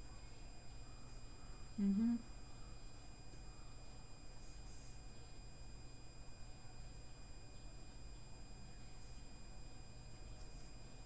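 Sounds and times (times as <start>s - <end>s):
high-pitched electronic whine: 0.0s - 11.0s
low electrical hum: 0.0s - 11.0s.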